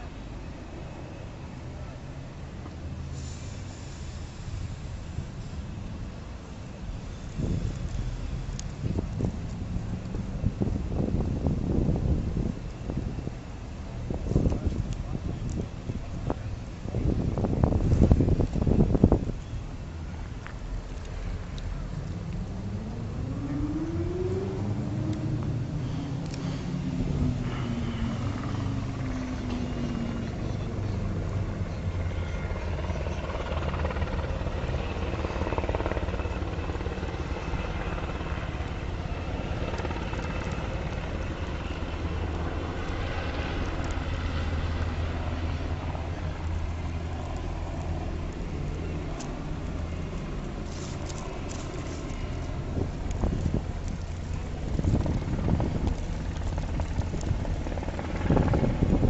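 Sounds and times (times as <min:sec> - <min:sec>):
helicopter drone: 0:00.0 - 0:59.0.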